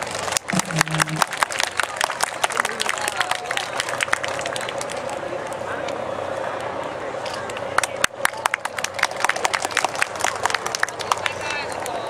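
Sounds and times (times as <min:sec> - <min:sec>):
audience applause: 0:00.0 - 0:05.0, 0:07.8 - 0:12.0
crowd chatter: 0:00.0 - 0:12.0.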